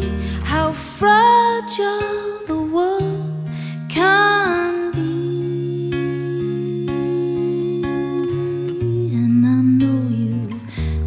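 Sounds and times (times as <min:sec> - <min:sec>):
acoustic guitar: 0:00.0 - 0:11.0
woman singing: 0:00.0 - 0:11.0.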